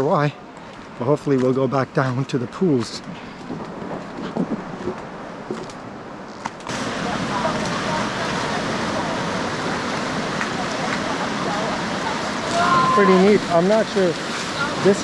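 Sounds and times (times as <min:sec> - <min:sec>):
wind: 0:00.0 - 0:15.0
ocean surf: 0:06.6 - 0:15.0.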